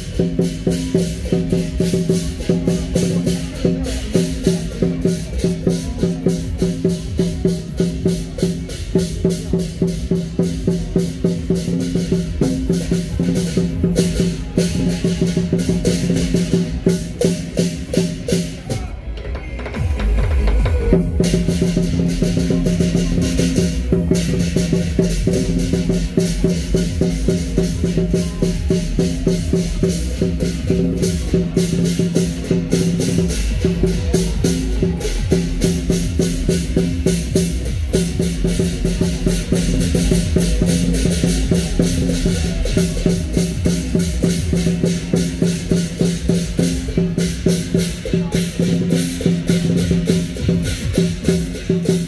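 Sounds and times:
big drum beating: 0.0s - 52.0s
cymbal crashes: 19.8s - 52.0s.

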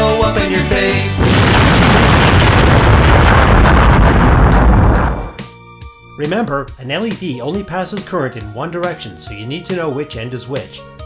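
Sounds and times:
explosion with long rumble: 1.2s - 5.4s.

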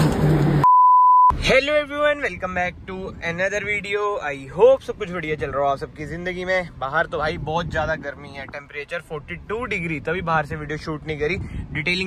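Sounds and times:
electronic beep: 0.6s - 1.4s.

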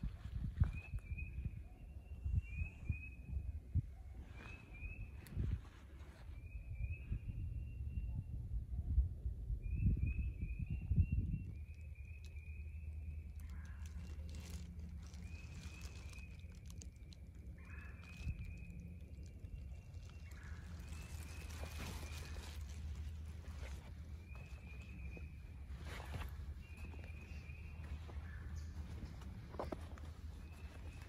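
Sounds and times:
frogs trilling: 13.3s - 22.6s.

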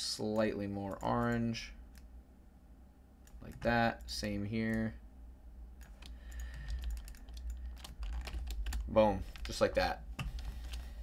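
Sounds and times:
computer keyboard keystrokes: 5.8s - 9.6s.

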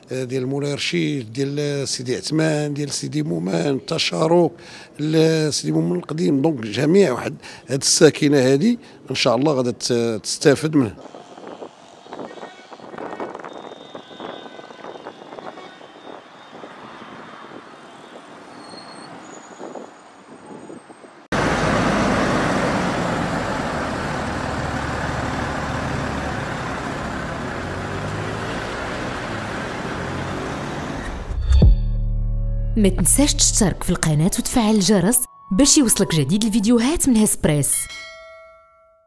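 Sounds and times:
quiet street traffic: 0.0s - 31.4s
truck engine rumble: 19.7s - 34.5s.

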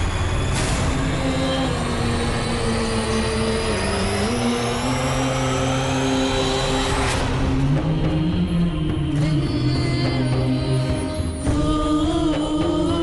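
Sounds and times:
deep steady rumble: 0.0s - 13.0s
held drone notes: 0.0s - 13.0s.

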